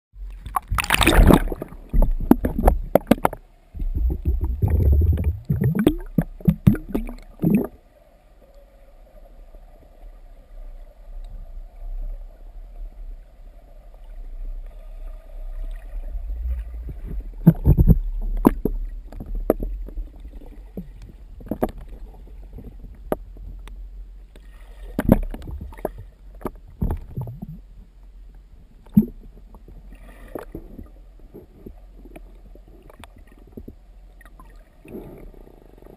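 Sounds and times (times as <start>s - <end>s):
muffled underwater rumble: 0.2s - 35.9s
underwater bubbles popping: 0.4s - 7.8s, 16.8s - 19.8s, 26.8s - 27.6s, 28.9s - 29.2s.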